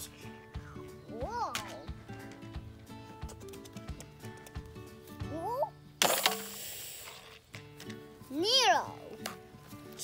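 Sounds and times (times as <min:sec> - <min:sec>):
background music: 0:00.0 - 0:10.0
child calling: 0:01.1 - 0:01.9.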